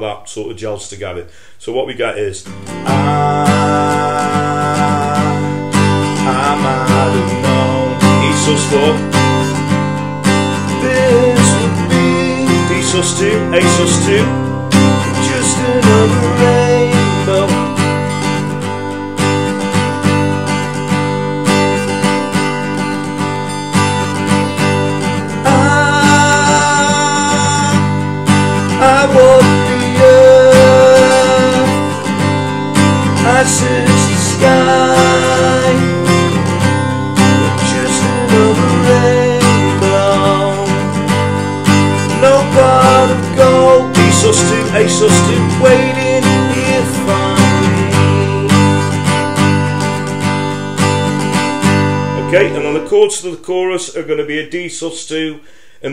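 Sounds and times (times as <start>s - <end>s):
acoustic guitar strumming: 2.4s - 54.2s.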